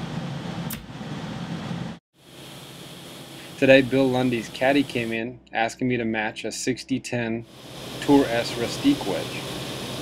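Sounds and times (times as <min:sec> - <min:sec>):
fan unit humming: 0:00.0 - 0:10.0
sharp click: 0:00.7 - 0:00.9.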